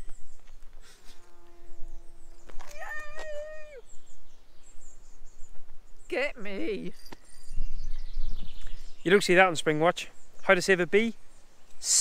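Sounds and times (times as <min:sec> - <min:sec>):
woman cheering yay: 0:02.6 - 0:03.9.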